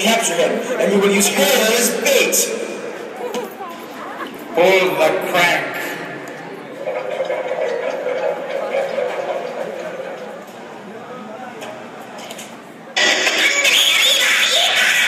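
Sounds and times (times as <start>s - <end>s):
voices echoing in arena: 0.0s - 15.0s.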